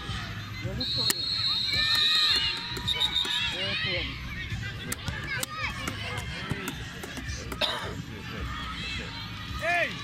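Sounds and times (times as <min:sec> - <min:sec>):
distant shouts and chatter: 0:00.0 - 0:10.0.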